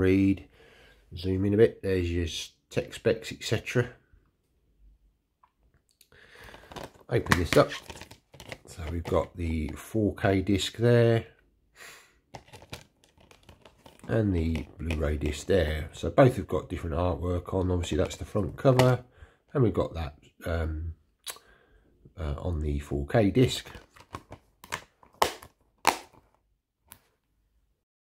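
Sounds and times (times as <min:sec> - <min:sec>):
plastic case clicks and taps: 0:06.7 - 0:09.2, 0:12.4 - 0:15.0, 0:23.8 - 0:26.3.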